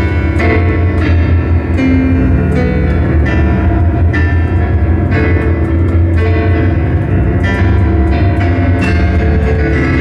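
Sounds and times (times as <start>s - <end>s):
fast electronic keyboard piano music: 0.0s - 10.0s.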